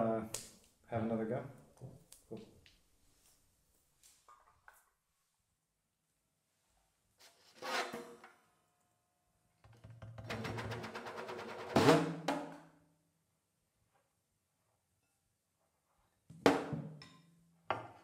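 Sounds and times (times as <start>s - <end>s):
snare drum played with sticks: 10.3s - 12.6s.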